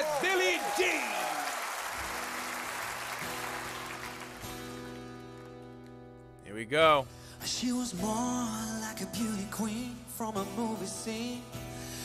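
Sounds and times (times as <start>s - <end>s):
audience applause: 0.0s - 5.5s.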